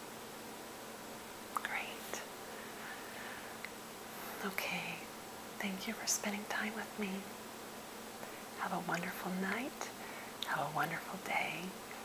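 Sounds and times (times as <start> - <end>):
steady background hiss: 0.0 - 12.0
soft whisper: 1.6 - 3.5, 4.1 - 7.3, 8.2 - 12.0.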